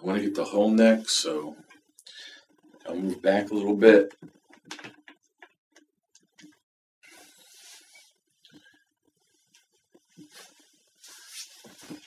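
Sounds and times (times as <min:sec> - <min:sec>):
rustle of person shifting: 0:07.1 - 0:12.0.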